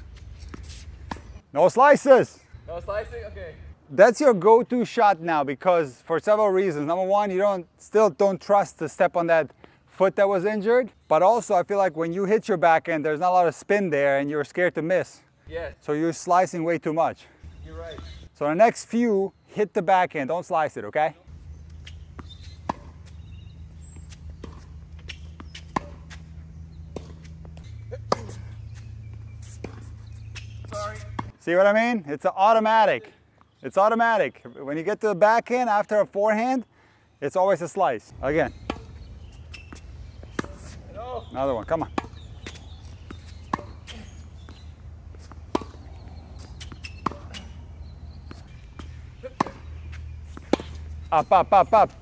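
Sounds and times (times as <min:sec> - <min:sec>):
tennis ball bouncing on court: 0:00.5 - 0:01.4, 0:21.5 - 0:31.4, 0:38.4 - 0:52.0
tennis ball struck by rackets: 0:00.5 - 0:01.4, 0:21.5 - 0:31.4, 0:38.5 - 0:47.6, 0:48.2 - 0:51.3.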